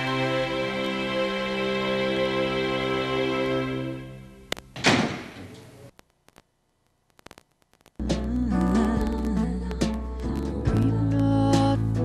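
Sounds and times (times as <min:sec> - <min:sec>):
metal doors thunking shut: 0:04.8 - 0:05.6.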